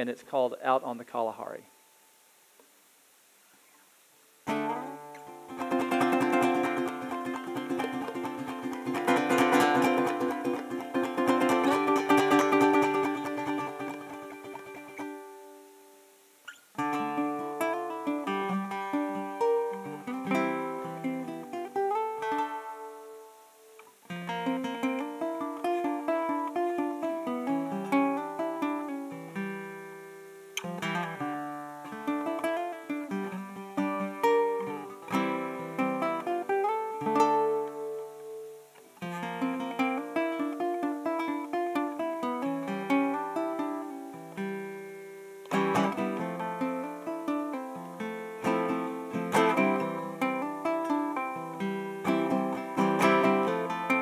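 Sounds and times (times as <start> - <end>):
ukulele playing plucked melody: 4.5 - 16.2, 16.8 - 54.0.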